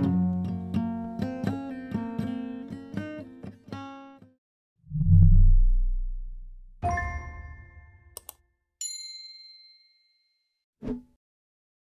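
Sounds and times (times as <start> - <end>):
mouse clicks: 8.2 - 8.4.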